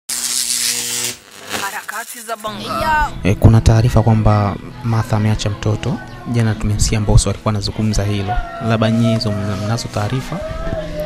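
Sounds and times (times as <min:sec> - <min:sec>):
loud buzz with hiss: 0:00.1 - 0:02.5.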